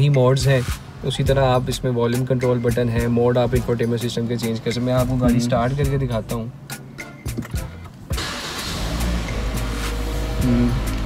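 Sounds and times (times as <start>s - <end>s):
car engine starting and running: 0.0s - 11.0s.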